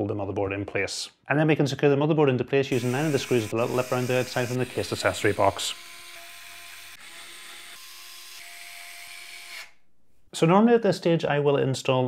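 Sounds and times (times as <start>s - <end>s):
electric screwdriver whining: 2.8s - 9.8s.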